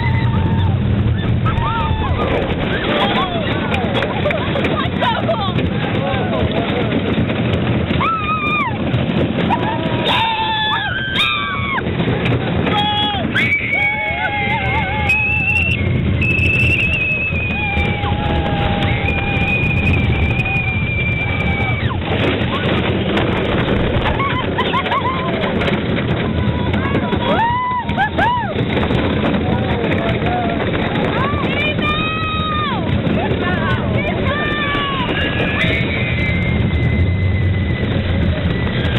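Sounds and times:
coaster train rumbling: 0.0 - 38.9
riders whooping and yelling: 0.0 - 38.9
wind: 0.0 - 38.9.

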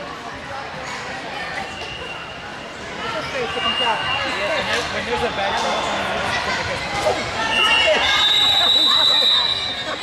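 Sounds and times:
overlapping voices in a gymnasium: 0.0 - 10.0.

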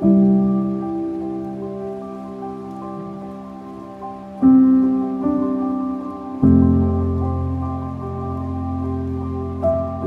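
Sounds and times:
slow soft piano music: 0.0 - 10.0.

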